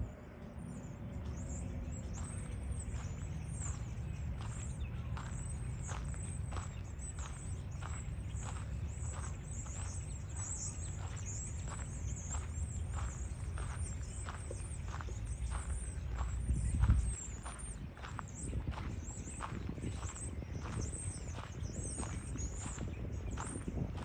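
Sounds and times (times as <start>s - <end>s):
footsteps on paved path: 0.4s - 24.0s.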